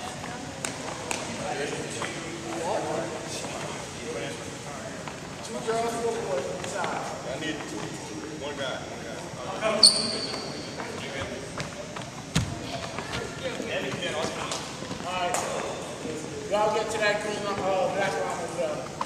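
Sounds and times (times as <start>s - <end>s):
group of people talking: 0.0s - 19.0s
loud high squeak: 9.8s - 10.6s.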